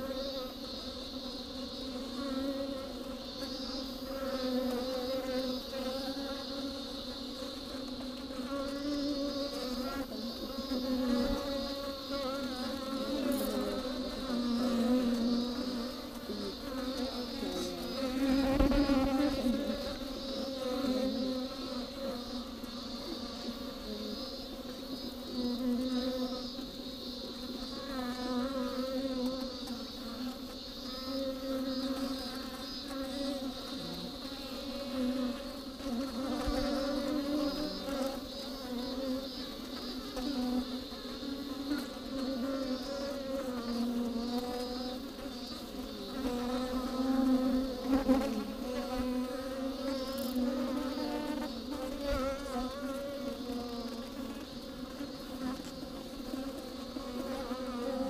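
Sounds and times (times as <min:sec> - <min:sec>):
bees buzzing: 0:00.0 - 0:58.0.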